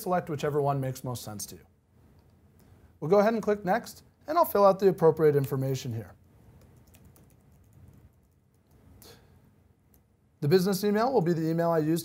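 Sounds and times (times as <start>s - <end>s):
faint keyboard typing: 6.2s - 9.1s.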